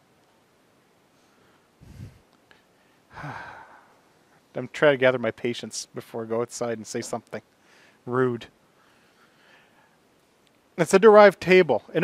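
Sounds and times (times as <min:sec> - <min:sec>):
man sighing: 0:03.1 - 0:04.0.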